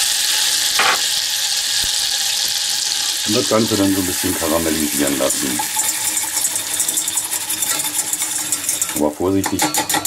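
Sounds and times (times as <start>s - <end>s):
butter and sugar sizzling: 0.0s - 10.0s
whisk scraping a metal pan: 5.8s - 10.0s.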